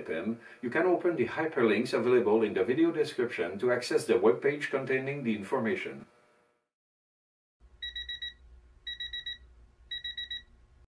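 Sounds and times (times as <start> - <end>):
electronic alarm beeping: 7.8 - 10.5.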